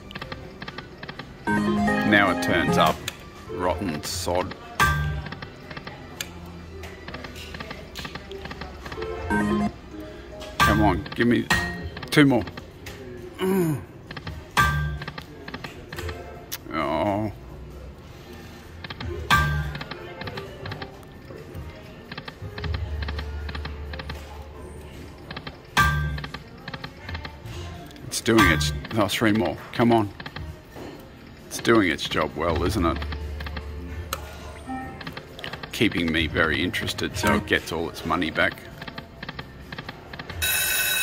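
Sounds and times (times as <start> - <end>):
slot machine game music: 1.4 - 5.2, 9.0 - 11.9, 34.5 - 35.2, 36.3 - 38.2, 40.4 - 41.0
slot machine spin sound: 1.5 - 3.1, 9.2 - 9.8, 40.4 - 41.0.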